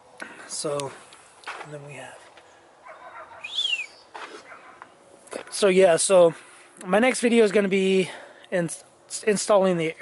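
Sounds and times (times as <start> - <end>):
bird falling whistle call: 3.4 - 4.1.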